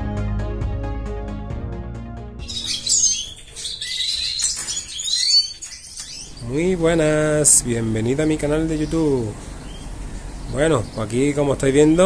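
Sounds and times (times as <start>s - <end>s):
intro music: 0.0s - 3.5s
songbirds chirping: 2.4s - 12.0s.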